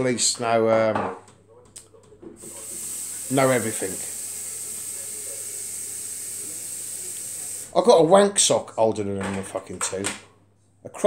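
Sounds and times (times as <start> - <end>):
steady hiss: 2.4 - 7.8.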